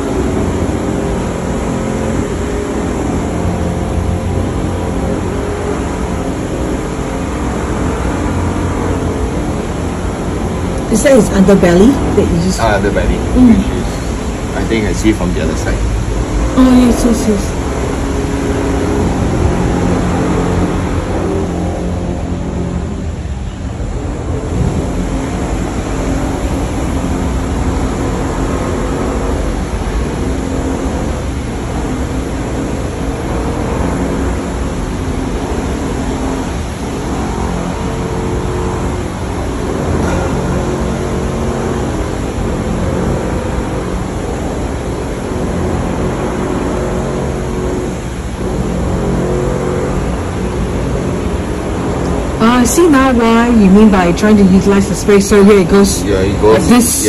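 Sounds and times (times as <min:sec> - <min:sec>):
machinery rumbling and droning: 0:00.0 - 0:57.0.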